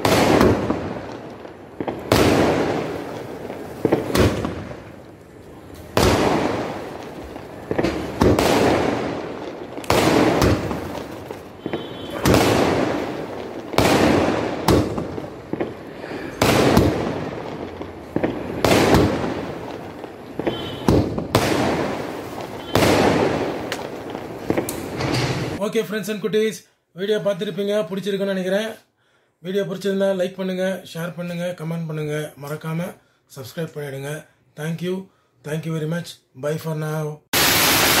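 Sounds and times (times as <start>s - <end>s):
fireworks shells bursting: 0.0s - 25.6s, 37.4s - 38.0s.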